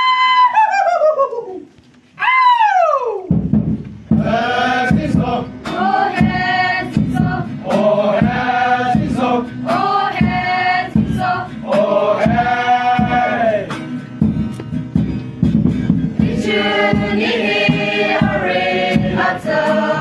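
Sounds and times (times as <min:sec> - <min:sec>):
choir singing: 0:04.2 - 0:13.8, 0:16.2 - 0:20.0.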